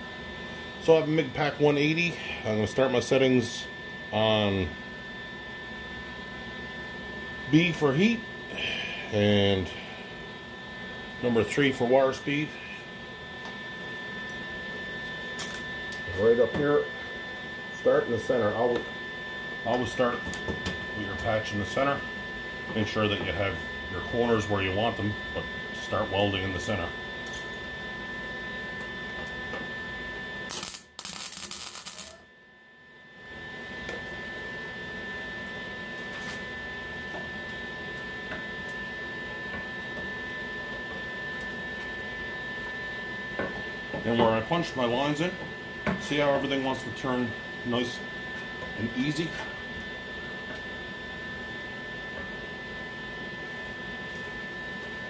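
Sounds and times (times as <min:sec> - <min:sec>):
electrical hum: 0:00.0 - 0:55.0
welding arc burst: 0:30.5 - 0:32.2
high whining tones: 0:30.5 - 0:32.3.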